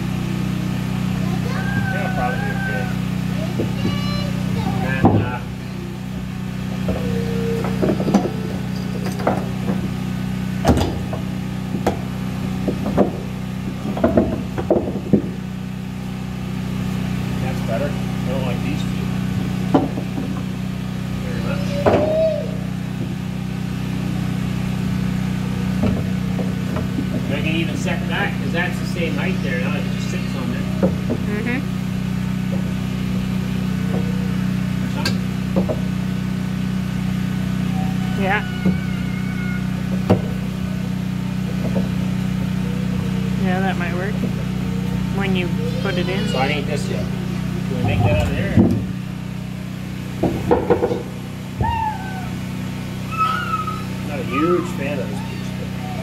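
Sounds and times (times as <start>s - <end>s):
low machine hum: 0.0s - 56.0s.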